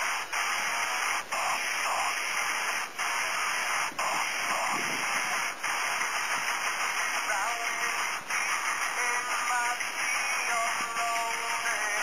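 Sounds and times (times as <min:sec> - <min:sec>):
static-like recording hiss: 0:00.0 - 0:12.0.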